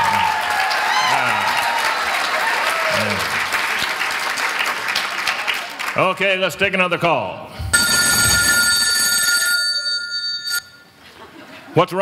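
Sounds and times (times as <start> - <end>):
telephone ringing: 7.8 - 10.9.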